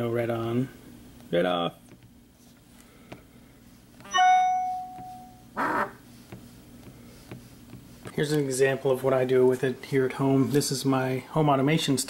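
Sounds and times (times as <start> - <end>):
bright bell-like chime: 4.1 - 5.4.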